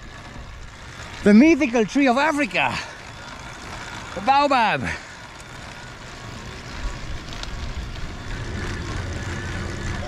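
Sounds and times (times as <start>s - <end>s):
tyre noise on paved road: 0.0s - 10.0s.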